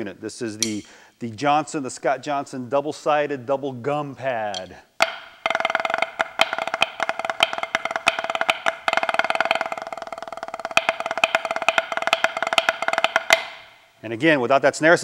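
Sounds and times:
drumsticks tapping practice pad: 0.6 - 0.9, 4.5 - 13.8.

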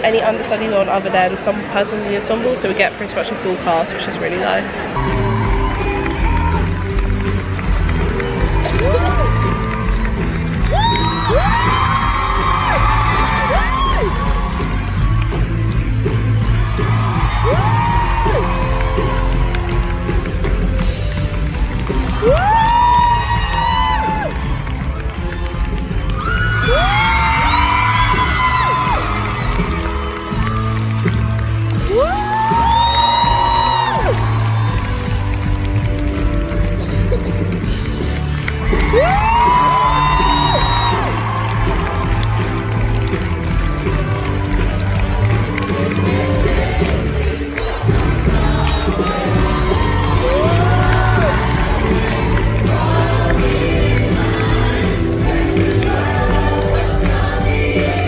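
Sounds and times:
audience cheering and whooping: 5.0 - 58.0.

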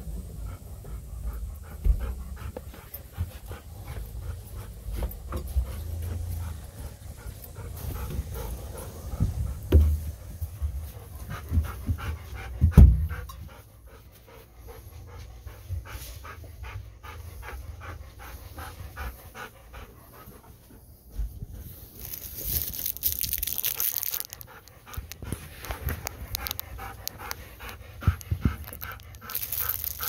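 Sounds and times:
dog panting: 0.0 - 30.0.

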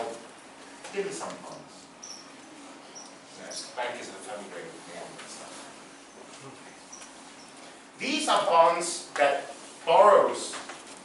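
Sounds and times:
whiteboard marker squeaking: 2.0 - 3.7.

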